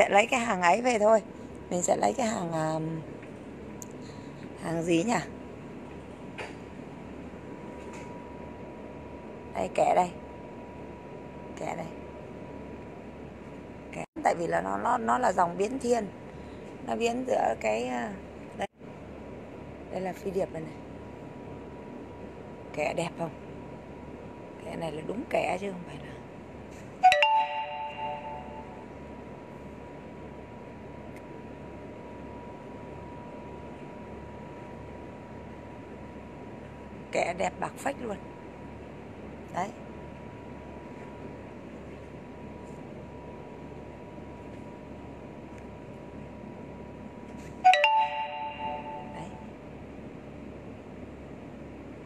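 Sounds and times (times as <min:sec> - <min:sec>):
bright bell-like chime: 0:27.0 - 0:28.7, 0:47.7 - 0:49.3.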